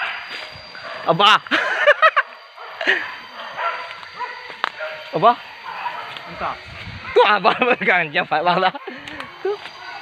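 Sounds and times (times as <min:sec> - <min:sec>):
dogs yelping and barking: 0:00.0 - 0:10.0.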